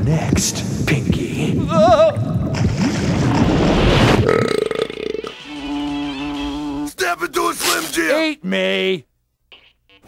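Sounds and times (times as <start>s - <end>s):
person burping: 4.2s - 5.3s.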